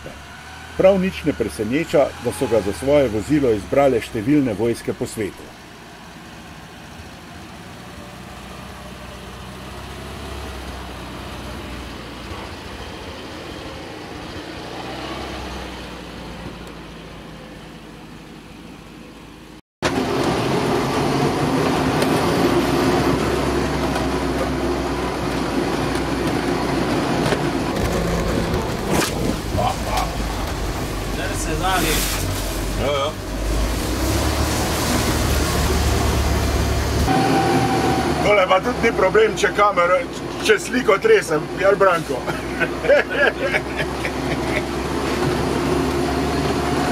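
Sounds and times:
off-road vehicle engine: 0.0 - 46.9
vehicle body rattles and knocks: 25.7 - 30.9.

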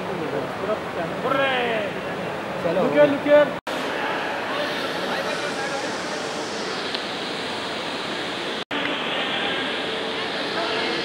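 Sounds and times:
steady rushing noise: 3.7 - 11.0.

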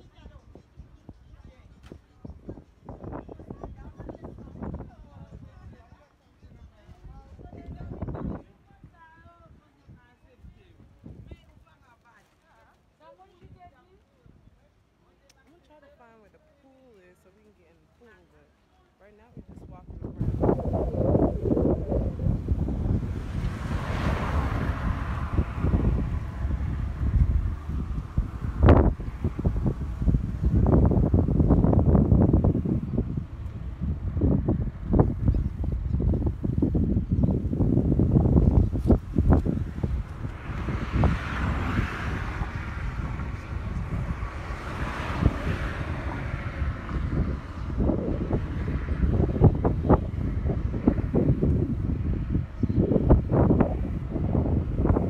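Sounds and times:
wind buffeting microphone: 0.0 - 11.7, 19.2 - 55.0.

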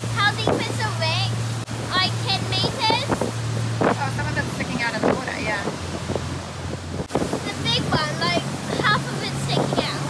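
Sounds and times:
motorboat engine droning: 0.0 - 10.0
wind buffeting microphone: 0.0 - 10.0.

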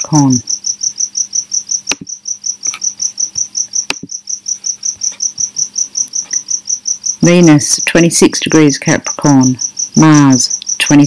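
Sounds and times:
insect chirping: 0.0 - 11.0
sharp clicks: 1.8 - 2.9.

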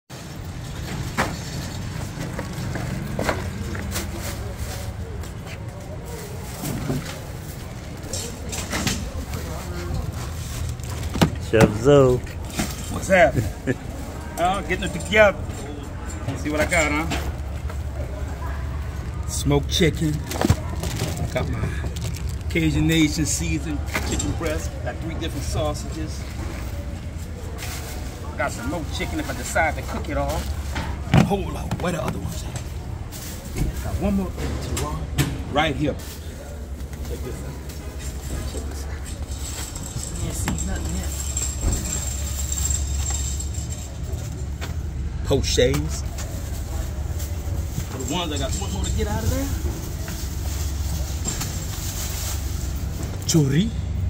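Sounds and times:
low engine-like rumble: 0.1 - 54.0
plastic bag rustling: 18.2 - 34.4, 45.9 - 53.2.

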